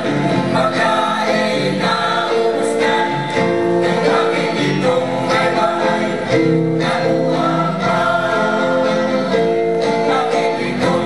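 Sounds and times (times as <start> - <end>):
mixed choir singing in harmony: 0.0 - 11.0.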